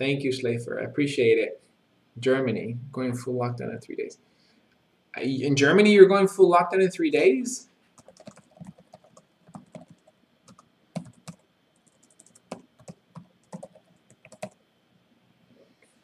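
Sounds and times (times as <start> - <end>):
typing on computer keyboard: 8.0 - 14.6.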